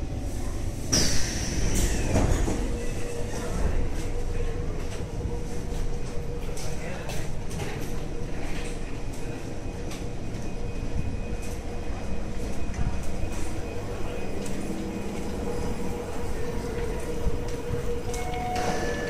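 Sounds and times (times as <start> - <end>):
passengers chatting: 0.0 - 19.0
stopped metro train humming: 0.0 - 19.0.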